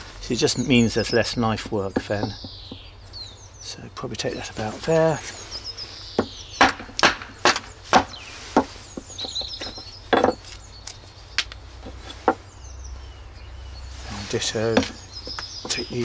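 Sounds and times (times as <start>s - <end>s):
wooden knocks on hatchet: 2.0s - 2.8s, 6.2s - 10.4s, 14.7s - 15.8s.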